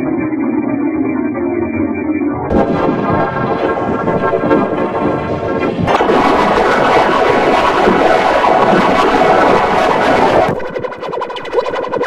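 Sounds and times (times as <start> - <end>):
harsh distorted pitch-shifted audio: 2.5 - 12.0.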